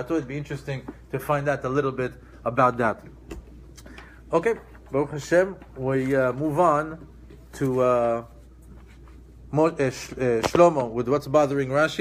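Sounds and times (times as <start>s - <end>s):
man speaking: 0.0s - 3.2s, 4.3s - 8.5s, 9.4s - 12.0s.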